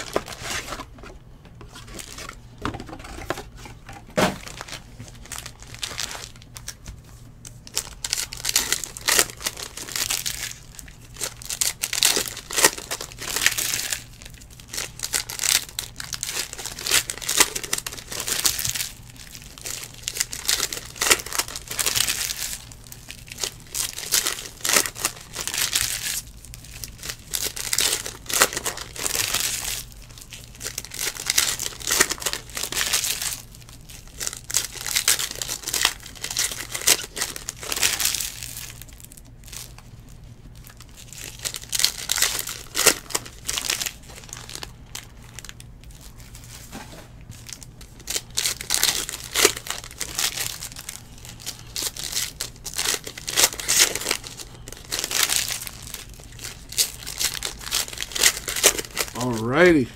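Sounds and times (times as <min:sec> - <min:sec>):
foil wrappers tearing and crinkling: 0:00.0 - 0:59.9.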